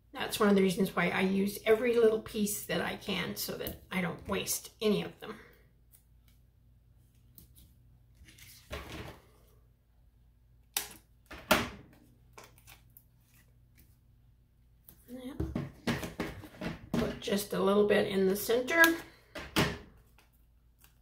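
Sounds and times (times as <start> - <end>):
paper rustling: 7.5 - 9.4.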